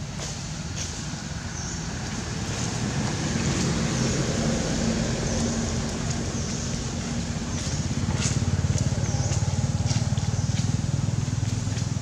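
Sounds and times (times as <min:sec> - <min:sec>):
engine running with pulsing throb: 0:02.4 - 0:12.0.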